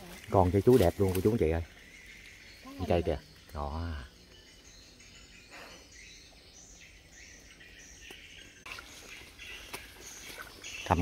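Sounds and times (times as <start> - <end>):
rustle of brushed leaves: 0.0 - 5.1, 7.5 - 11.0
faint bird chirps: 0.0 - 11.0
insect calls: 0.0 - 11.0.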